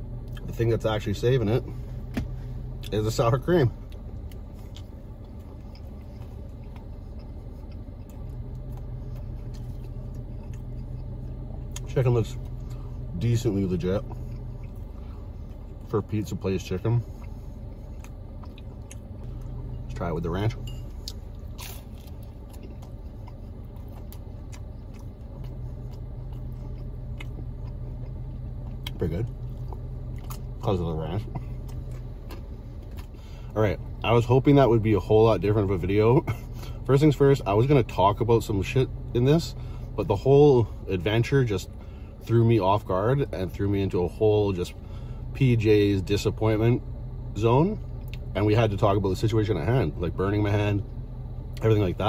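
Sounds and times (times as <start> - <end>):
car engine idling: 0.0 - 52.0
person chewing: 3.8 - 16.1, 17.0 - 19.8, 20.6 - 34.0.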